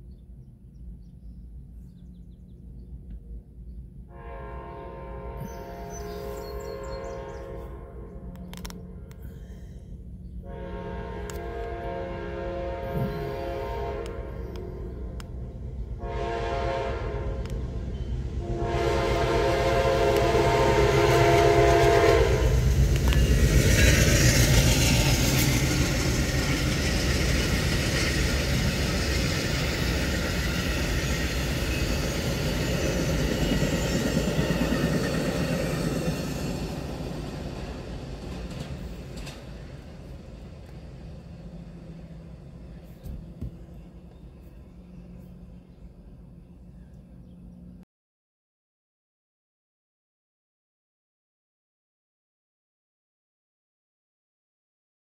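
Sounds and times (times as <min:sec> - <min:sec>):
train rumble and wheel noise: 0:00.0 - 0:47.8
train horn blasts: 0:04.1 - 0:09.8, 0:10.4 - 0:15.2, 0:16.0 - 0:23.1.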